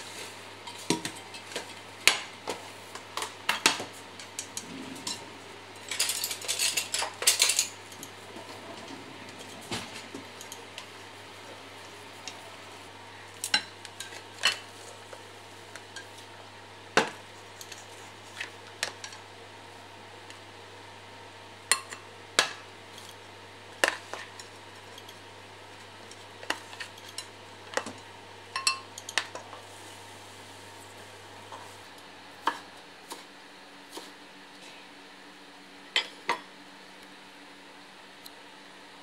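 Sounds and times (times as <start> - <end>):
metal spoon clinking on bowls: 5.8 - 8.1, 28.5 - 29.4.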